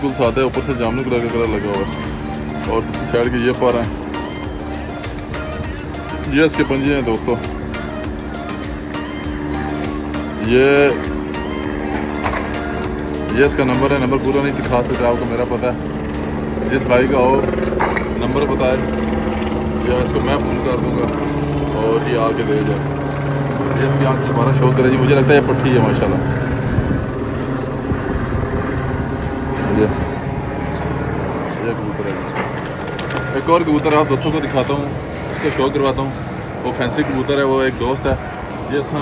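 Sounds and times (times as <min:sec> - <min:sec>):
background music with held notes: 0:00.0 - 0:39.0
low rumbling noise: 0:11.2 - 0:39.0.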